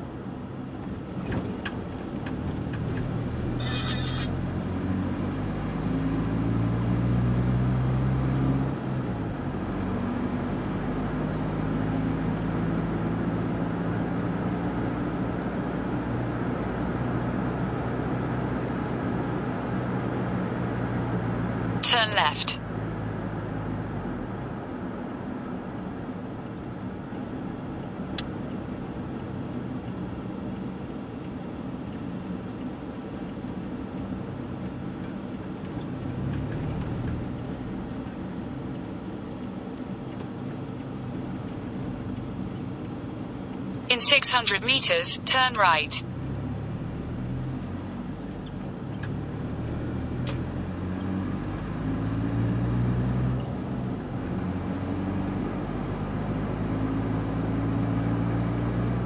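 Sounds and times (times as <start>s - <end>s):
car interior road noise: 0.0s - 59.0s.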